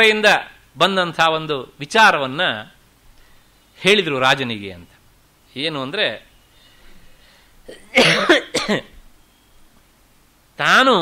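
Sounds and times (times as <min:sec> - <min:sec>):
man coughing: 0:07.7 - 0:09.0.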